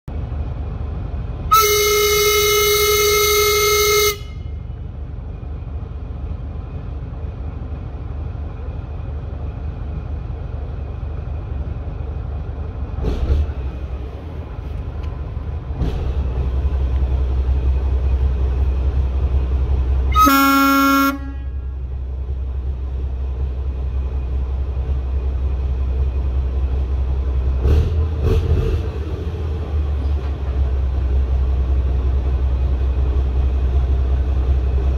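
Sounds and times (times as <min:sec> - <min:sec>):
diesel locomotive engine rumble: 0:00.0 - 0:34.9
locomotive horn blast: 0:01.5 - 0:04.7, 0:20.1 - 0:21.9.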